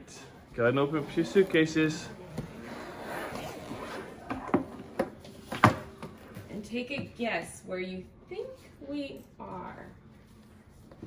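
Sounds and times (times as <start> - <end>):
suitcase zipper unzipping: 2.6 - 4.3.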